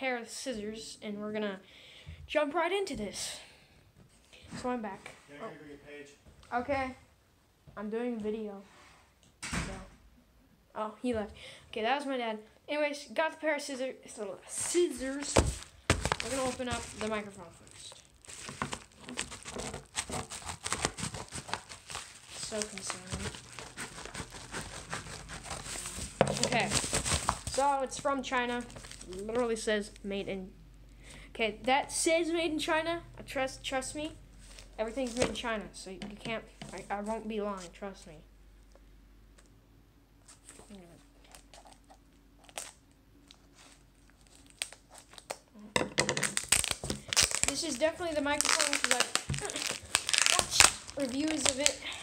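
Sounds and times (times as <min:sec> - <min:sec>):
paper crinkling: 0:14.6 - 0:29.6, 0:40.2 - 0:45.4, 0:46.2 - 0:52.0
scissors snipping paper: 0:19.0 - 0:27.4.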